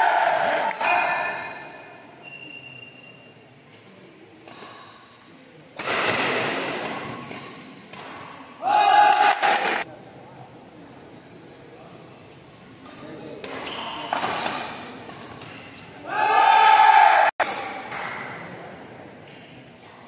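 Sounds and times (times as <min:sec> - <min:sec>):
players and spectators shouting: 0:00.0 - 0:01.7, 0:08.6 - 0:09.8, 0:16.0 - 0:17.4
racket hitting shuttlecock: 0:05.8 - 0:08.5, 0:17.4 - 0:18.4.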